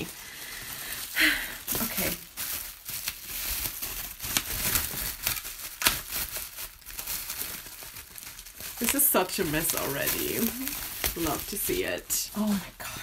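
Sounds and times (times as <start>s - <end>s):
bubble wrap crinkling: 0.0s - 13.0s.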